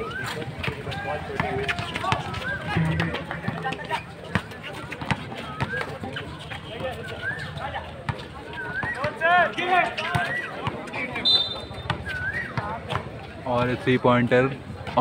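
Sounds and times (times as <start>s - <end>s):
players running: 0.0s - 11.2s
basketball bouncing: 1.4s - 5.8s.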